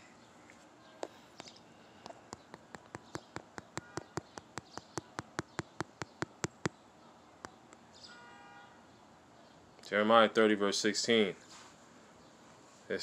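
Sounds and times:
rapid sharp clicks: 0:02.0 - 0:06.7.

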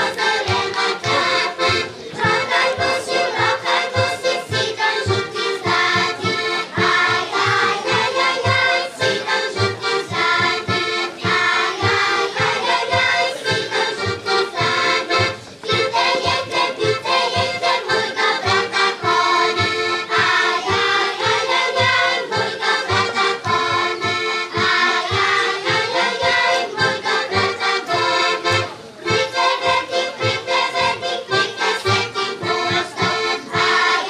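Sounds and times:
button accordion playing folk tune: 0:00.0 - 0:34.0
children's choir singing: 0:00.0 - 0:34.0.

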